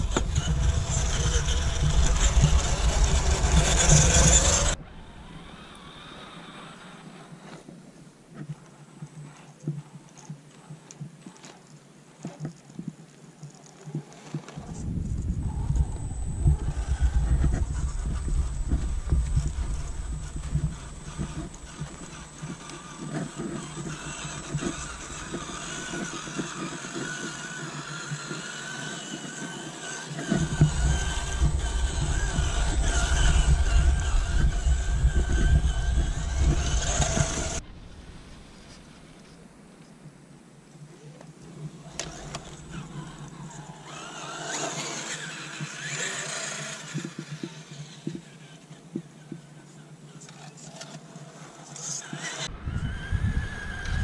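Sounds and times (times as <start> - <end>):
toy car motor whining: 0.0 - 7.6, 13.6 - 37.6, 41.6 - 49.4, 50.2 - 54.0
low rumble: 14.6 - 26.2, 30.4 - 39.6.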